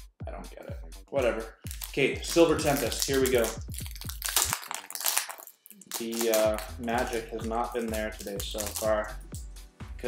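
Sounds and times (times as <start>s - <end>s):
foil pack crinkling: 1.6s - 9.0s.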